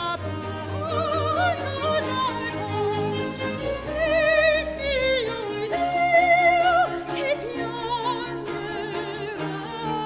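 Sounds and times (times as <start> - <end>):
instrumental ensemble: 0.0 - 10.0
soprano singing opera aria: 0.0 - 10.0.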